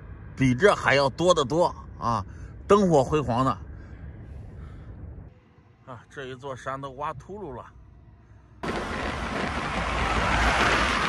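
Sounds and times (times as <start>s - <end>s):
minivan overtaking: 0.0s - 11.0s
road and wind noise: 0.0s - 11.0s.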